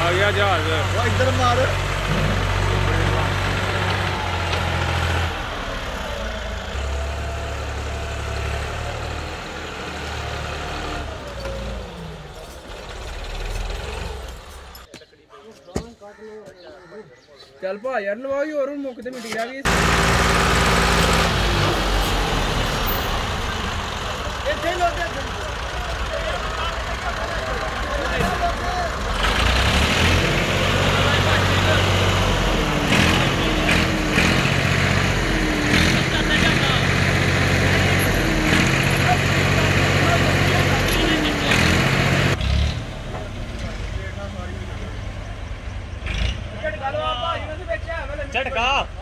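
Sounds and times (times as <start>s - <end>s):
tractor diesel engine running: 0.0s - 14.9s, 19.7s - 49.0s.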